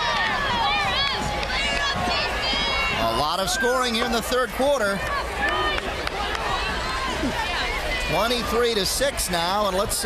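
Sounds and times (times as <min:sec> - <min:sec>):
distant shouting voices: 0:00.0 - 0:09.9
football crowd din: 0:00.0 - 0:10.0.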